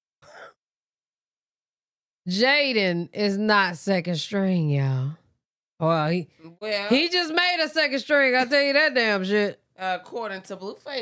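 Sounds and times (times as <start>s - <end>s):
person sighing: 0.2s - 0.6s.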